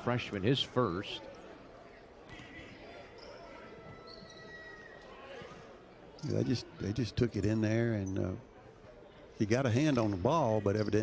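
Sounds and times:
faint shoe squeaks: 0:02.3 - 0:06.5, 0:07.8 - 0:08.5.

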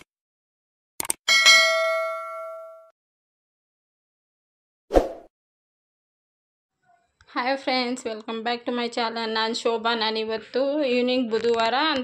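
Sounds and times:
notification bell ding: 0:01.3 - 0:02.9.

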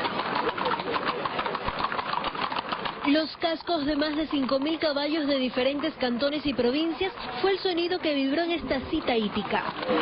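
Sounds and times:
horse hooves clopping on pavement: 0:00.0 - 0:10.0.

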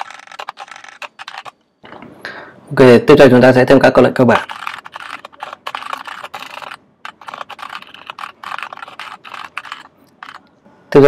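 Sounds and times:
fast typing on keyboard: 0:00.0 - 0:01.6, 0:04.4 - 0:10.4.

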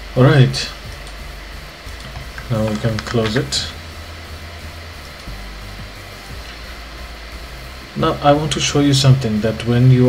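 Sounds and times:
low hum: 0:00.0 - 0:10.0
steady hiss: 0:00.0 - 0:10.0.

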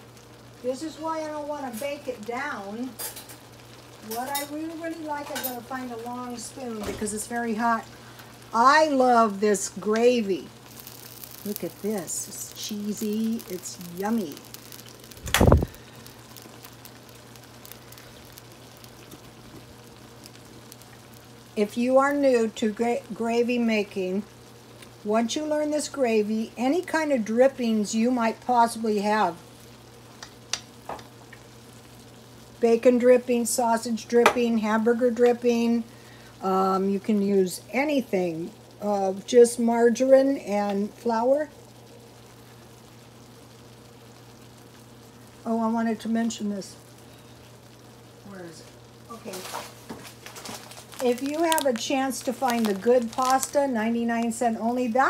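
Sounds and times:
low steady hum: 0:00.0 - 0:55.0
sauce simmering in a skillet: 0:00.0 - 0:55.0.

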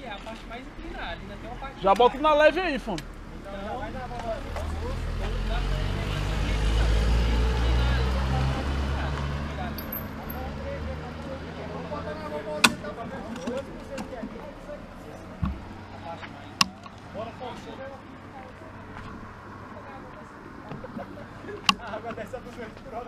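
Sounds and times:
car passing by: 0:04.4 - 0:09.8.

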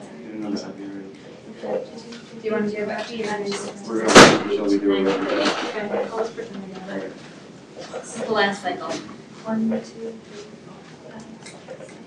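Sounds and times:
quiet talk: 0:00.0 - 0:12.0
loud bang of something shut: 0:04.1 - 0:04.6.

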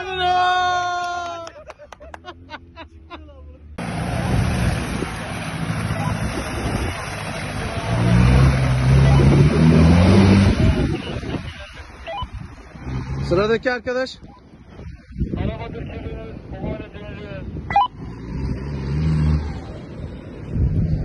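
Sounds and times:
suv engine revving: 0:03.8 - 0:13.5.

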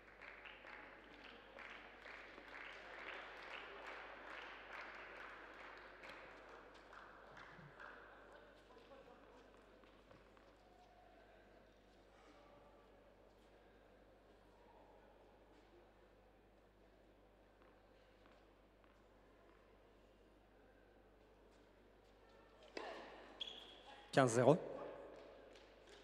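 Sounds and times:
spectators clapping in rhythm: 0:00.0 - 0:08.7.

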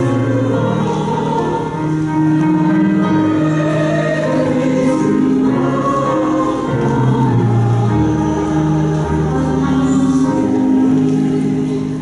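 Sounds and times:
choir singing a slow hymn: 0:00.0 - 0:12.0.

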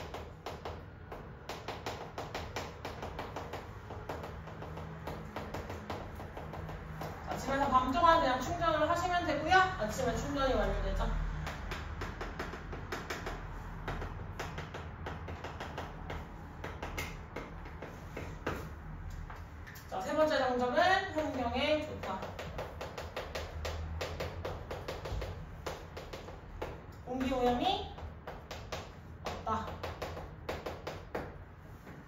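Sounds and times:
chalk tapping and scratching: 0:00.0 - 0:07.6, 0:10.6 - 0:19.9, 0:21.2 - 0:32.0.

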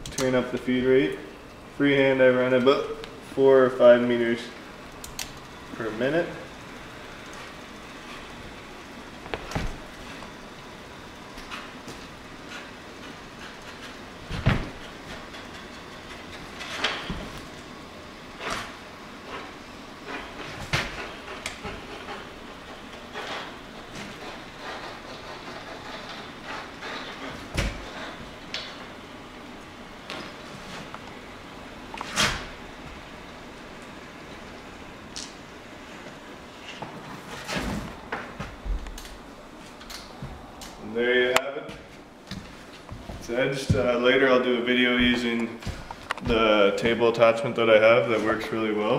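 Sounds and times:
edgebander machine running: 0:00.0 - 0:36.4.

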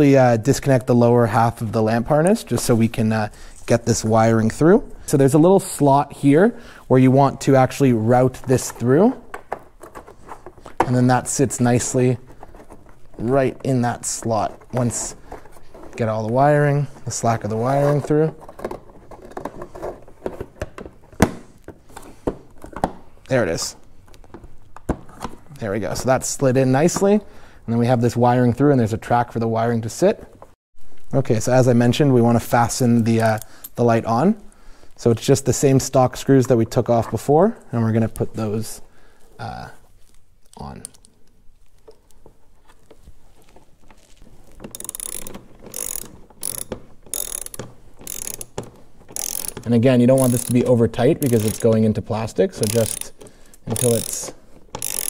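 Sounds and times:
hard plastic parts clicking: 0:44.5 - 0:55.0.

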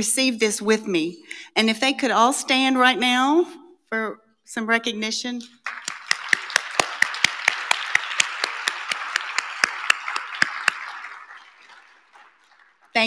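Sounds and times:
close hand claps: 0:05.5 - 0:13.0
audience applauding: 0:05.6 - 0:13.0.

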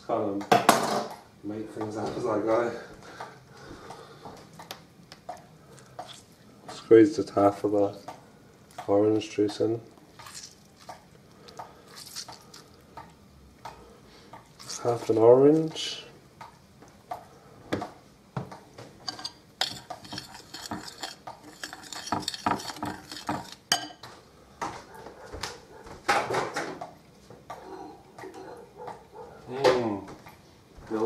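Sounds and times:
spoon clinking on glass bowl: 0:19.1 - 0:24.0.

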